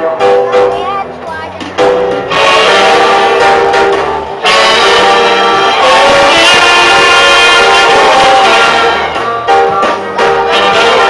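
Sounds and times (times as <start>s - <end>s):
saxophone: 2.3s - 11.0s.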